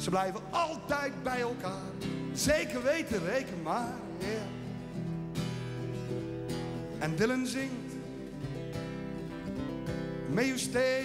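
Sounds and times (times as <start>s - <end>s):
man singing: 0.0s - 5.1s, 6.9s - 8.5s, 10.2s - 11.0s
acoustic guitar strummed chords: 0.0s - 11.0s.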